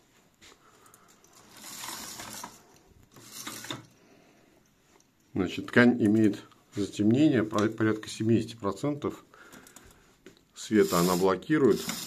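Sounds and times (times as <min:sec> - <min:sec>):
roller blind chain mechanism turning: 0:01.2 - 0:03.9, 0:10.8 - 0:12.0.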